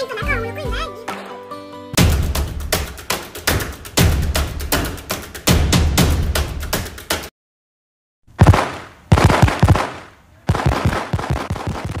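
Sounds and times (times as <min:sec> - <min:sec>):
fireworks crackling pops: 0:08.4 - 0:12.0.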